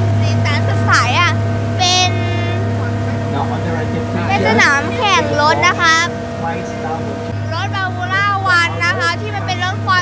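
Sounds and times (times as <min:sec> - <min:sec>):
boat engine humming: 0:00.0 - 0:10.0
faint voices: 0:01.9 - 0:10.0.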